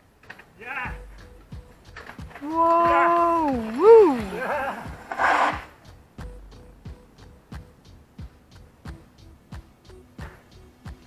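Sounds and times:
person shouting whoa: 0:02.4 - 0:05.0
short rushing hiss: 0:04.0 - 0:05.8.

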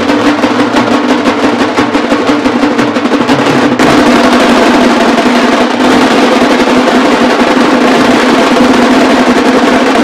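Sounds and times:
street band of large drums: 0:00.0 - 0:10.0.

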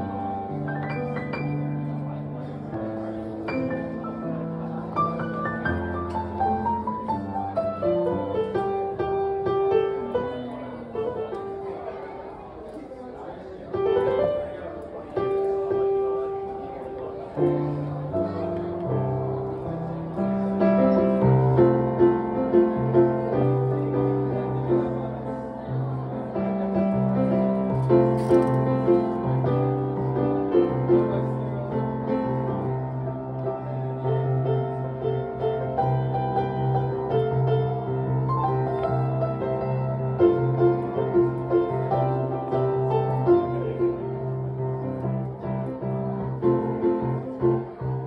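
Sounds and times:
solo acoustic piano: 0:00.0 - 0:12.2, 0:13.7 - 0:48.0.

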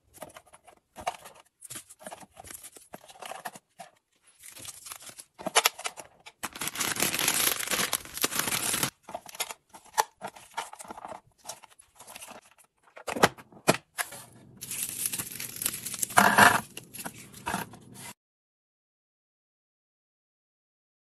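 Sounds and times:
plastic wrapper tearing and crinkling: 0:04.4 - 0:12.4, 0:14.6 - 0:18.1.

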